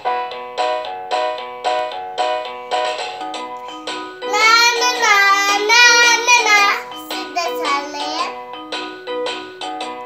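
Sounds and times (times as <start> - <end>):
electronic keyboard tune: 0.0 - 10.0
child singing into toy microphone: 4.2 - 8.4.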